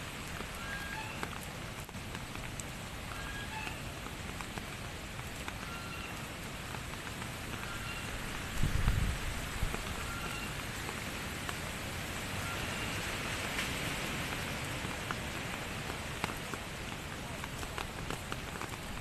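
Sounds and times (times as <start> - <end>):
heavy rain falling: 0.0 - 19.0.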